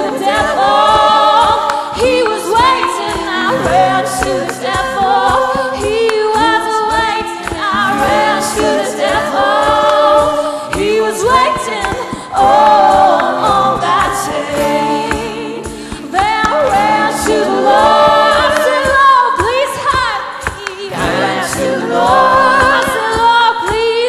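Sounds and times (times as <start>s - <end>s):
acoustic guitar: 0.0s - 23.9s
woman singing a hymn: 0.0s - 24.0s.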